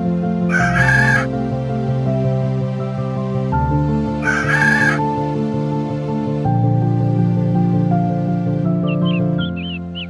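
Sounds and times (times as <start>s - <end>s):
background music sustained notes: 0.0s - 10.0s
rooster crowing: 0.5s - 1.3s, 4.2s - 5.0s.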